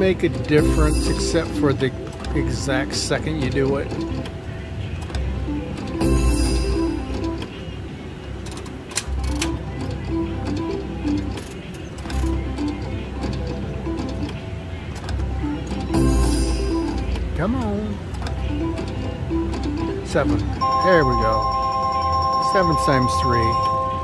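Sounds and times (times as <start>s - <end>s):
slot machine jingle: 0.0s - 4.3s, 5.3s - 14.5s, 15.2s - 24.0s.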